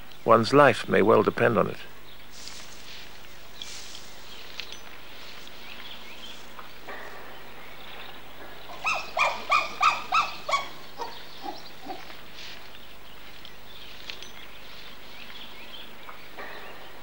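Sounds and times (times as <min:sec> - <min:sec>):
animal short pitched calls: 0:08.8 - 0:12.1.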